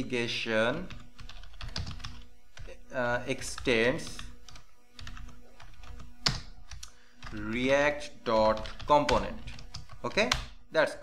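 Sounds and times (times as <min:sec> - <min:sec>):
faint steady hum: 0:00.0 - 0:11.0
keyboard keystrokes: 0:08.4 - 0:10.5.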